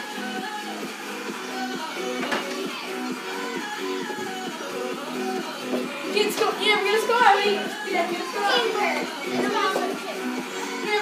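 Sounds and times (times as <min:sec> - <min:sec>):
children's voices playing: 0:06.0 - 0:11.0.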